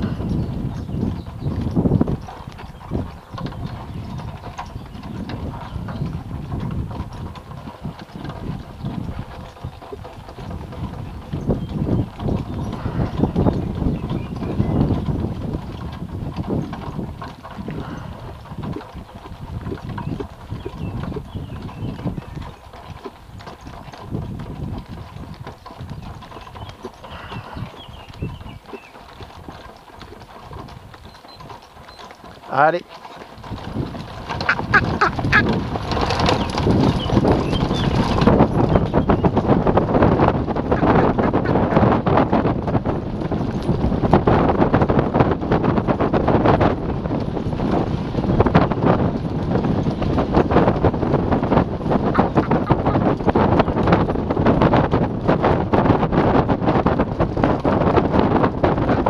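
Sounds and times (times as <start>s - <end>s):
horse hoofbeats on dirt track: 0.0s - 59.0s.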